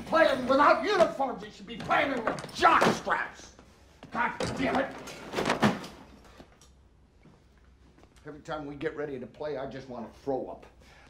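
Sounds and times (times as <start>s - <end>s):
metal locker bang and rattle: 4.2s - 6.1s.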